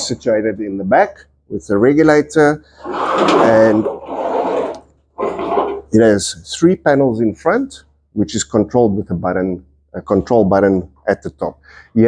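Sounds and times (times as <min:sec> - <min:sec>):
castors rolling and scraping on wood: 0:02.8 - 0:06.0.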